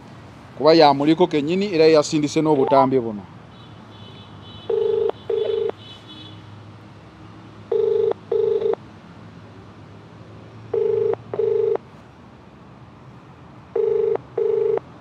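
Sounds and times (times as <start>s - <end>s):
telephone ringback tone: 4.7s - 5.7s, 7.7s - 8.8s, 10.7s - 11.8s, 13.8s - 14.8s.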